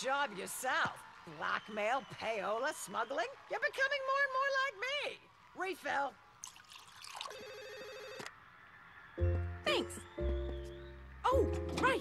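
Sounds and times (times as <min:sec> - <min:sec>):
wine poured into a glass: 0:06.4 - 0:07.4
telephone ringing: 0:07.2 - 0:08.3.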